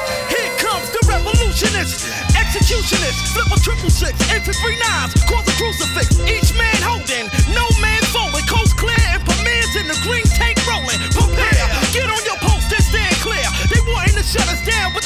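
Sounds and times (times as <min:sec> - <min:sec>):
rapping over a beat: 0:00.0 - 0:15.0.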